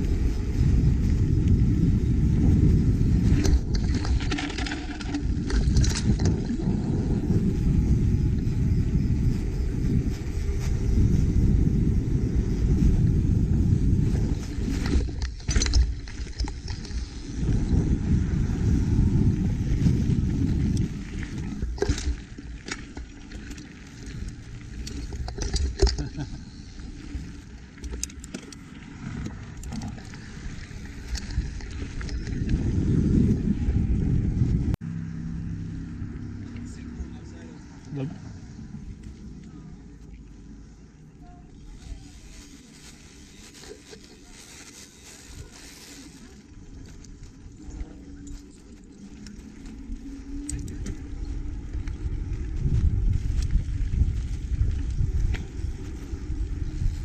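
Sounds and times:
bike clicks and rattles: 0:00.0 - 0:34.1, 0:42.5 - 0:57.0
bicycle tyre noise: 0:00.0 - 0:34.8, 0:35.4 - 0:57.0
wind buffeting microphone: 0:00.0 - 0:57.0.

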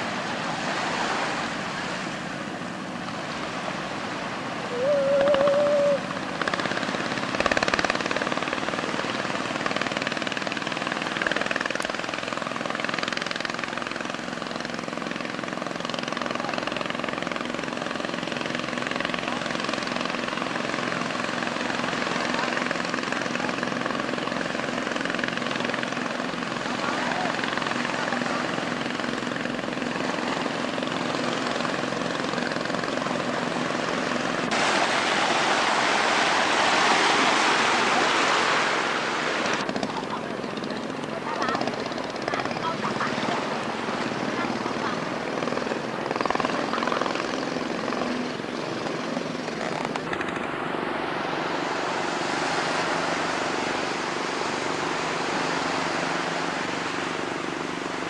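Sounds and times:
steady motor drone: 0:00.0 - 0:58.0.

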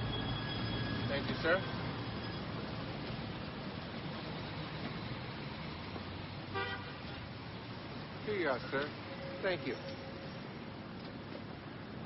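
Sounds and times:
city street traffic hiss: 0:00.0 - 0:12.0
car horn toot: 0:06.5 - 0:07.2.

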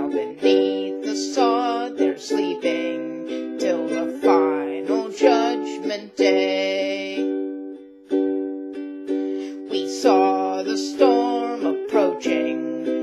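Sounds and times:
woman singing: 0:00.0 - 0:07.4, 0:09.5 - 0:13.0
ukulele strummed chords: 0:00.0 - 0:13.0.

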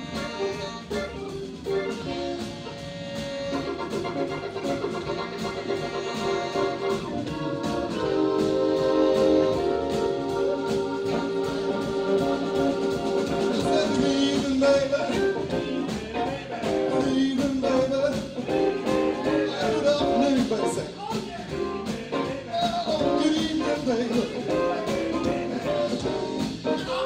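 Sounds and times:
tenor saxophones playing: 0:00.0 - 0:15.9
electric guitar: 0:00.0 - 0:20.9, 0:21.5 - 0:27.0
drum kit beat: 0:00.0 - 0:27.0
keyboard: 0:00.0 - 0:27.0.

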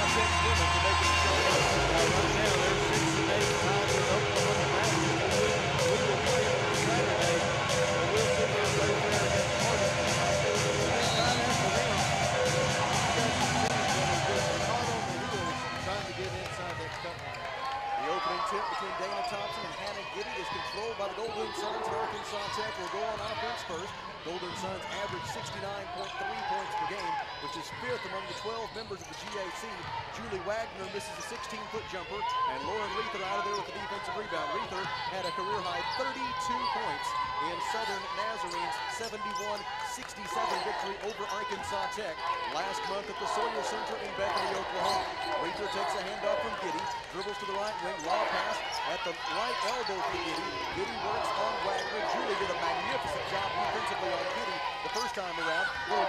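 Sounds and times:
voices in a hall: 0:00.0 - 0:56.0.

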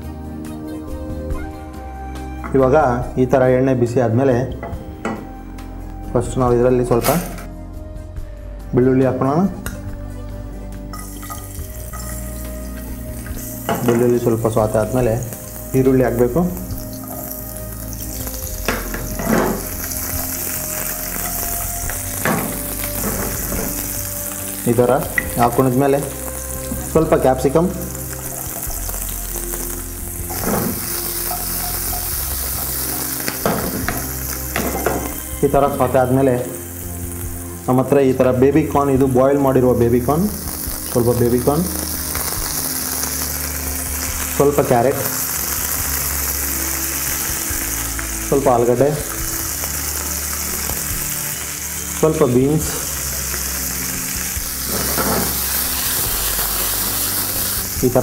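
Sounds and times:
vegetables sizzling in oil: 0:10.8 - 0:58.0.

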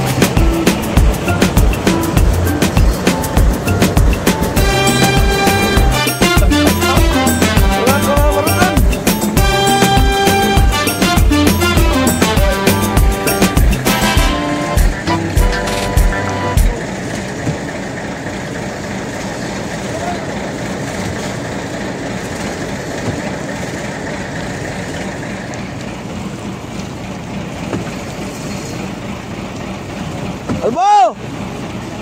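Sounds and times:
music with a beat: 0:00.0 - 0:16.8
boat engine running: 0:00.0 - 0:32.0.

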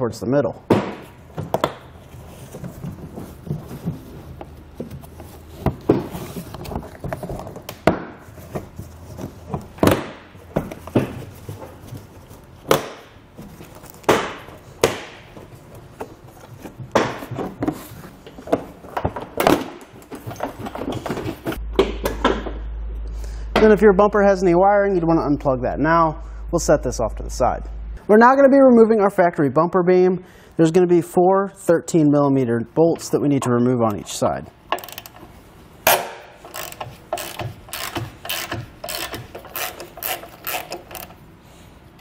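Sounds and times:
plastic creaking and rubbing: 0:36.4 - 0:41.2.

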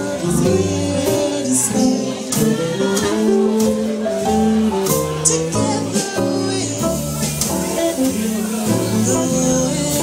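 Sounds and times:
woman singing: 0:00.0 - 0:04.0, 0:05.5 - 0:10.0
double bass: 0:00.0 - 0:10.0
drum kit with cymbals: 0:00.0 - 0:10.0
piano: 0:00.0 - 0:10.0
saxophone: 0:00.0 - 0:10.0.

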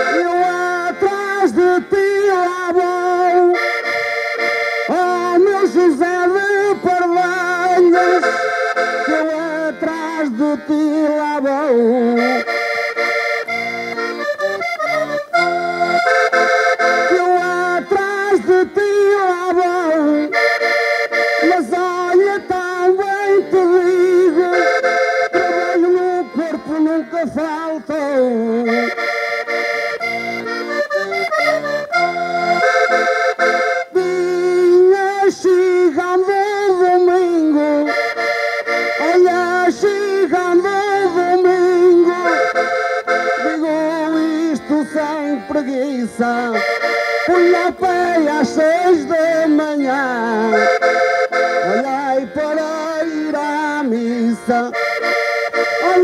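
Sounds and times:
accordion playing folk tune: 0:00.0 - 0:56.0.

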